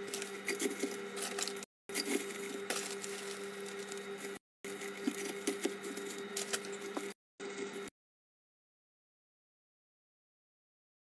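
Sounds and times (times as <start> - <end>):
rustling of stems and leaves: 0.0 - 7.2
steady low hum: 0.0 - 7.9.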